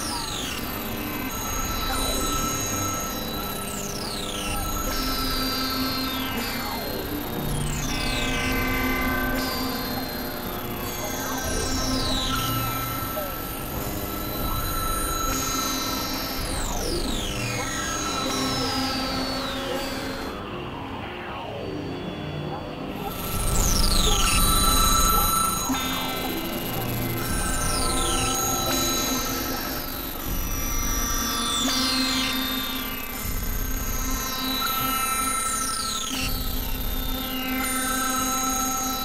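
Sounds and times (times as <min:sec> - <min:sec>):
droning synthesizer tones: 0:00.0 - 0:39.0.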